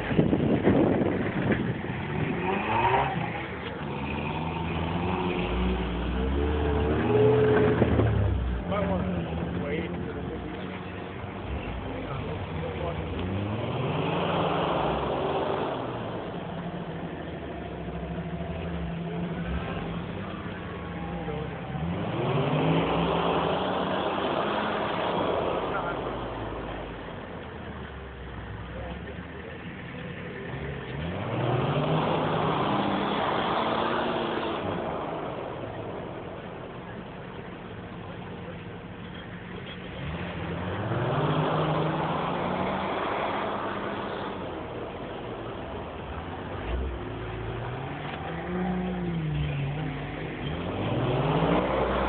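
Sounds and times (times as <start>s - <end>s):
tires spinning in snow: 0.0s - 52.0s
engine revving: 0.1s - 27.1s, 30.2s - 36.3s, 39.8s - 52.0s.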